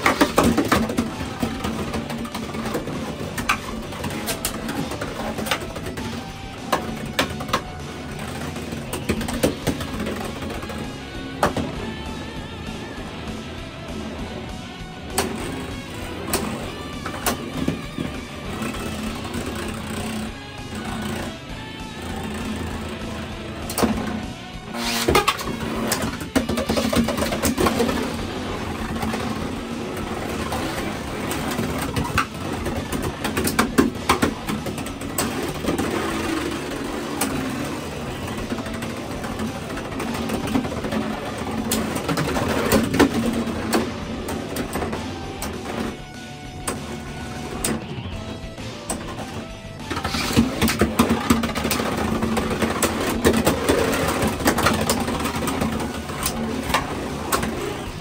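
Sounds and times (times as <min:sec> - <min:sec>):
background music: 0:00.0 - 0:58.0
spinning tops whirring: 0:00.0 - 0:58.0.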